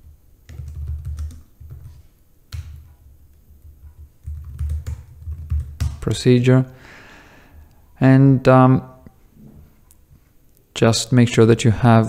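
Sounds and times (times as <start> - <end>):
typing on computer keyboard: 0.5 - 2.8, 3.6 - 6.0.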